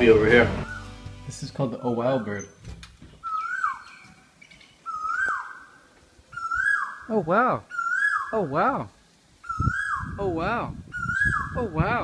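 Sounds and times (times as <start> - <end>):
bird whistled call: 0.6 - 0.9, 3.2 - 4.1, 4.8 - 5.7, 6.4 - 7.1, 7.7 - 8.3, 9.4 - 10.2, 10.9 - 11.6.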